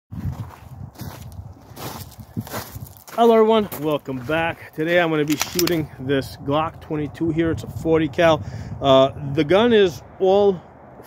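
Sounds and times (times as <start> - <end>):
feet scuffing on gravel: 0.2 - 5.2
footsteps on gravel: 0.2 - 5.9.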